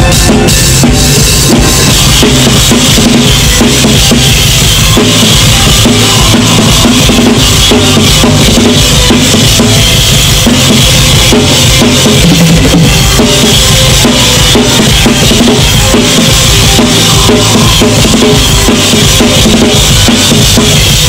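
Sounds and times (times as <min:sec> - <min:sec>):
drum kit played hard and fast: 0:00.0 - 0:21.0
metal band playing: 0:00.0 - 0:21.0.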